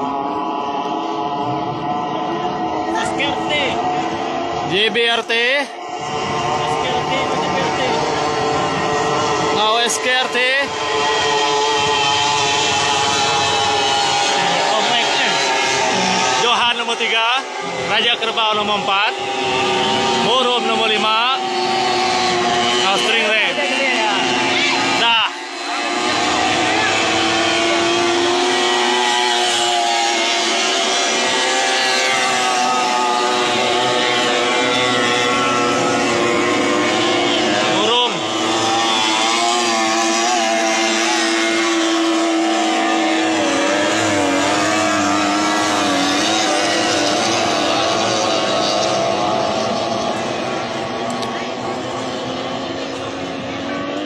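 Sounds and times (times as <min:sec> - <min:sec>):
outboard engines droning: 0:00.0 - 0:54.0.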